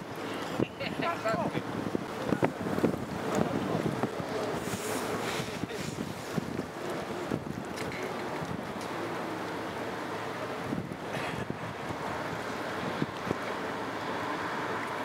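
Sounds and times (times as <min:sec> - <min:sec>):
wind buffeting microphone: 0:00.0 - 0:09.0, 0:10.4 - 0:13.8.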